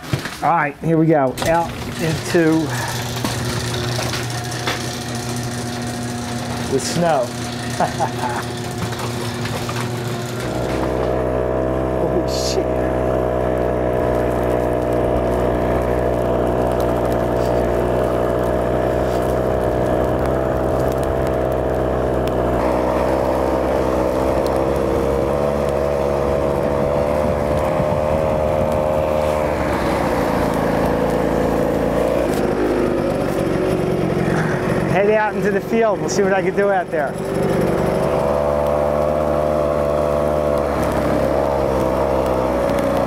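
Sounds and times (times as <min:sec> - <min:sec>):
two-stroke engine under load: 0:00.0 - 0:43.0.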